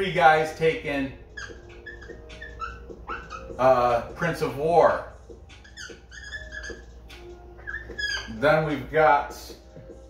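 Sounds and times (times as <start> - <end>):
marker squeaking on whiteboard: 0.0 - 10.0.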